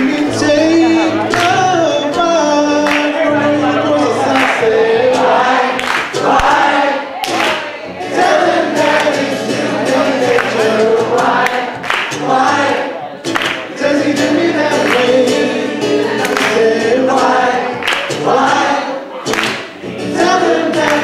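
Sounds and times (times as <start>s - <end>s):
men singing through microphones: 0.0s - 19.2s, 19.9s - 21.0s
acoustic guitar: 0.0s - 21.0s.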